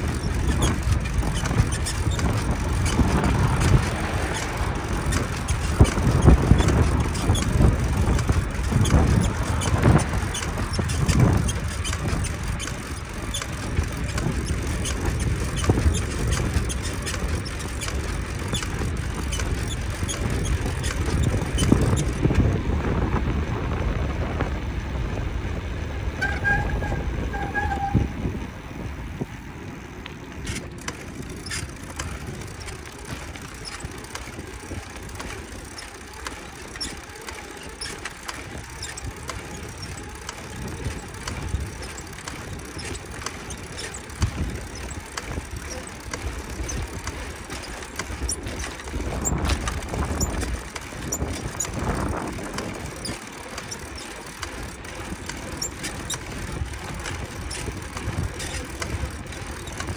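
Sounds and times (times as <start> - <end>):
short squeaks: 0.0 - 22.4, 26.2 - 28.3, 30.4 - 59.9
bike clicks and rattles: 0.0 - 59.9
wind rumbling on microphone: 0.0 - 59.9.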